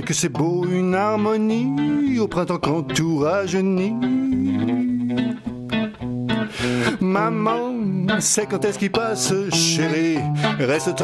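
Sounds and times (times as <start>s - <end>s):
guitar chords: 0.0s - 11.0s.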